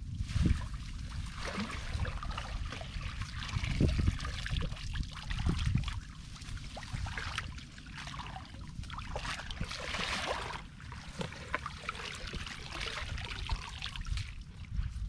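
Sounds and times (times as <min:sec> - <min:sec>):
person wading through water: 0:00.1 - 0:15.0
floodwater sloshing and dripping: 0:00.2 - 0:15.0.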